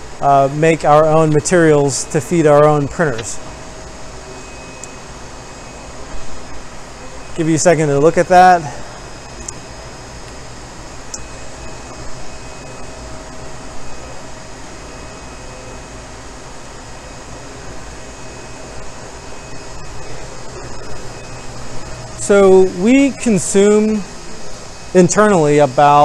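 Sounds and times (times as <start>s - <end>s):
faint whining tones: 0.0s - 26.0s
machinery and ventilation hum: 0.0s - 26.0s.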